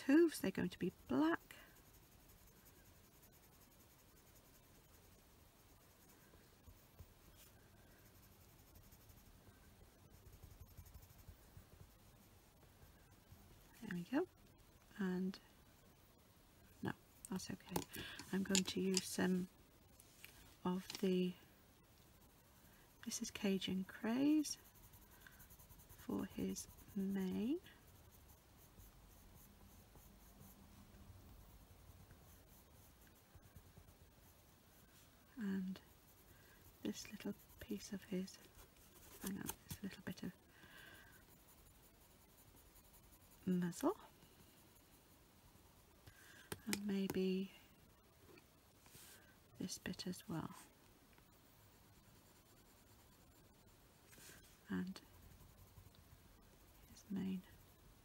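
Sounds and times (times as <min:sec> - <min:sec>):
pencil scratching on card: 0:00.1 - 0:12.7, 0:17.2 - 0:19.5, 0:20.3 - 0:47.3, 0:48.8 - 0:58.0.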